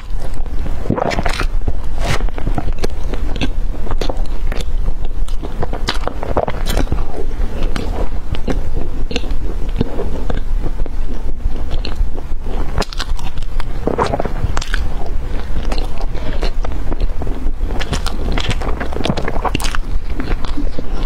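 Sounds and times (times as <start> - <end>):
person chewing bread: 0.0 - 21.0.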